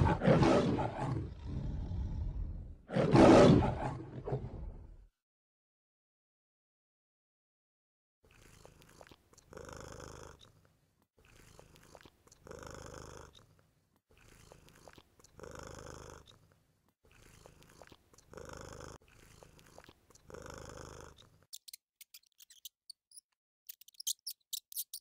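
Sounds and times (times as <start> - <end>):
lion snoring: 0.0 - 5.0, 8.3 - 10.4, 11.2 - 13.4, 14.2 - 16.3, 17.1 - 21.3.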